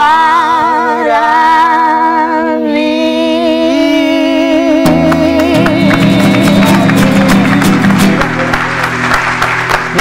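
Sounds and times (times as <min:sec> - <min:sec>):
acoustic guitar strumming chords: 0:04.8 - 0:10.0
applause: 0:04.9 - 0:10.0.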